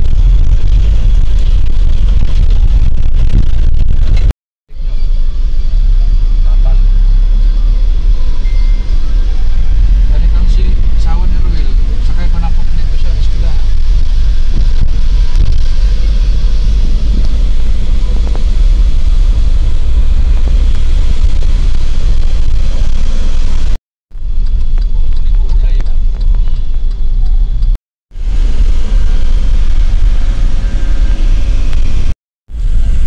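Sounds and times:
road noise: 0:00.0 - 0:33.0
vehicle engine rumble: 0:00.0 - 0:33.0.

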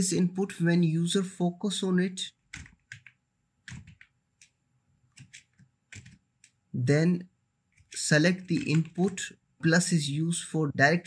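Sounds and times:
keyboard keystrokes: 0:02.5 - 0:04.6, 0:05.2 - 0:06.6, 0:07.8 - 0:09.3.

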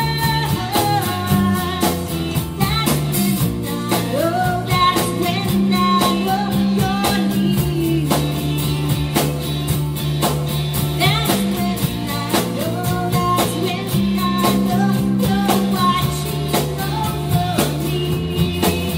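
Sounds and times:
live band playing slow song: 0:00.0 - 0:18.9.

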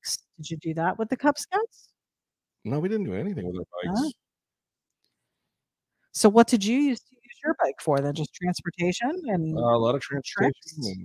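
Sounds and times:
person saying yeah: 0:03.1 - 0:04.1, 0:09.6 - 0:11.0.

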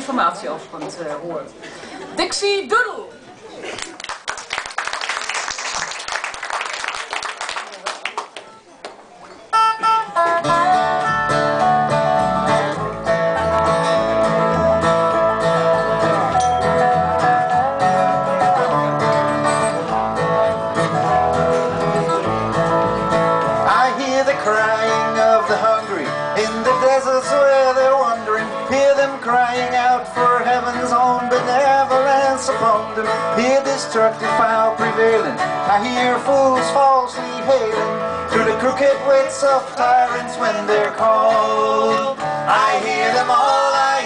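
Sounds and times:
audience applauding: 0:03.6 - 0:09.0
string band playing country tune: 0:08.5 - 0:44.0.

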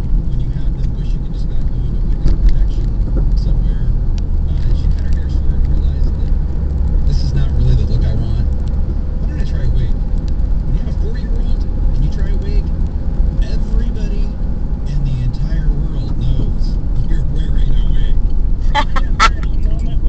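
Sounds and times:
car engine and tyre rumble: 0:00.0 - 0:20.0.

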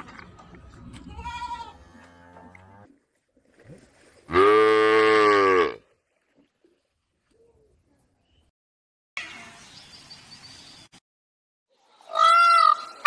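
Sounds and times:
cattle mooing: 0:04.3 - 0:05.8.

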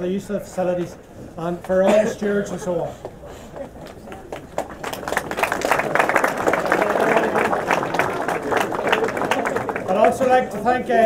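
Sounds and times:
crowd applauding: 0:03.6 - 0:11.0.

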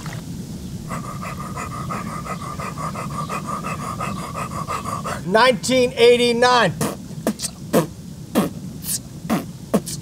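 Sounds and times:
hot tub jets churning water: 0:00.0 - 0:00.5
man beatboxing: 0:06.7 - 0:10.0.

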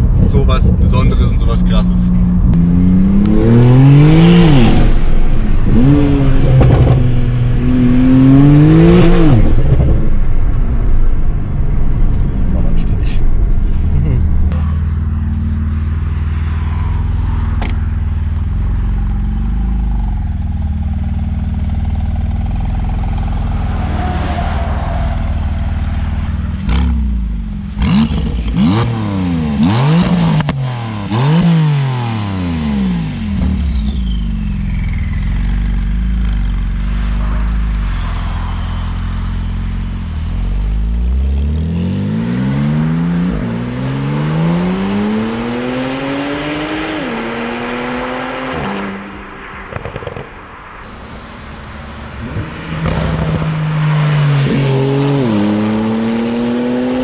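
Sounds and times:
car engine revving: 0:00.0 - 0:57.0
exhaust crackles: 0:00.0 - 0:57.0
car accelerating through gears: 0:02.5 - 0:10.2, 0:36.4 - 0:50.3, 0:51.8 - 0:57.0
car engine idling: 0:09.4 - 0:28.7, 0:33.1 - 0:41.8.

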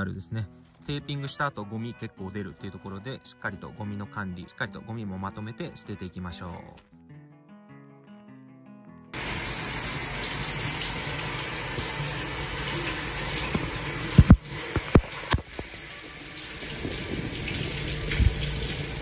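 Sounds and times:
shower water splashing: 0:09.2 - 0:19.0.

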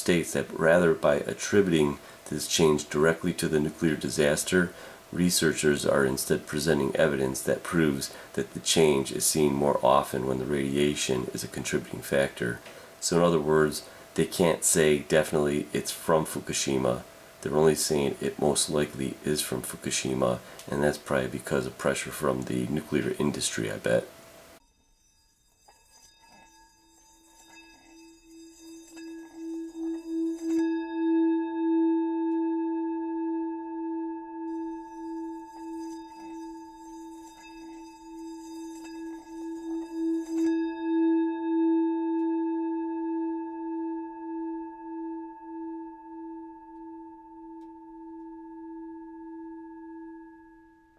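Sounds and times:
rasping rubbing sound: 0:00.0 - 0:31.1, 0:34.5 - 0:41.3
bell-like ringing tone: 0:24.6 - 0:50.9.

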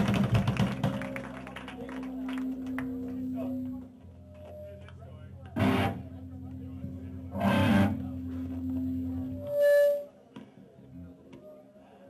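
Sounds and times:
live band playing: 0:05.6 - 0:06.2.

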